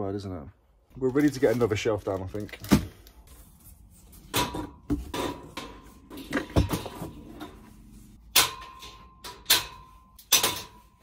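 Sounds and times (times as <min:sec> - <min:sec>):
metal shelving clanks and knocks: 0:04.2 - 0:11.0.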